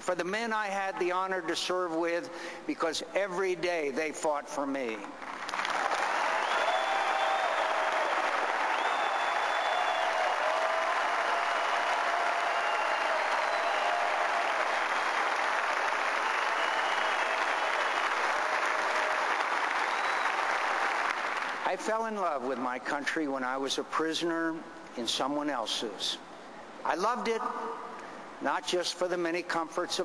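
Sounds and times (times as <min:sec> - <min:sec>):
crowd applauding: 0:05.2 - 0:21.8.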